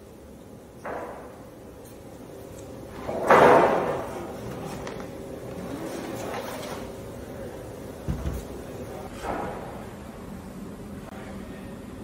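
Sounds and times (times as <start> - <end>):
dull thump: 8.1 - 8.5.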